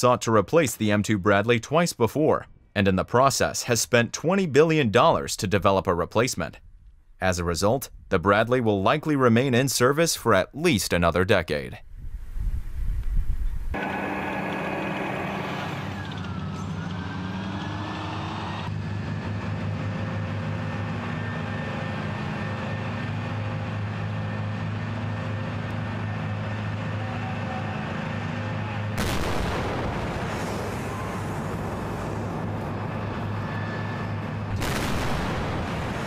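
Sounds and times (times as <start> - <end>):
rough burst of noise: 13.8 - 16.4, 23.2 - 36.0
tracked vehicle engines running: 13.8 - 36.0
low explosion rumble: 29.0 - 36.0.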